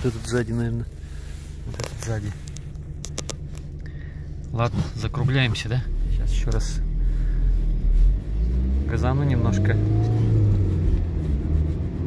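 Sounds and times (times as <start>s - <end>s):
diesel engine pulling away: 5.7s - 12.0s.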